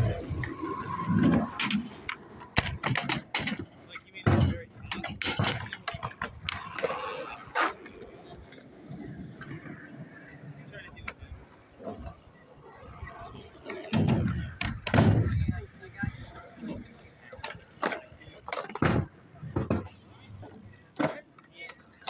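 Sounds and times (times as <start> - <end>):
skateboard clacking on concrete: 0.0 - 10.3, 13.5 - 22.0
background voices: 0.0 - 22.0.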